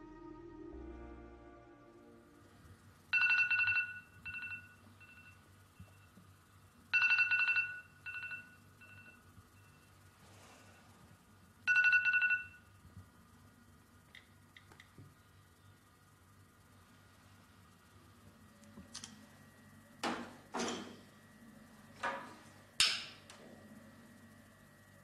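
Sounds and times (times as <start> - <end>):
electronic telephone ringing: 3.1 - 6.0, 6.9 - 9.8, 11.6 - 12.7.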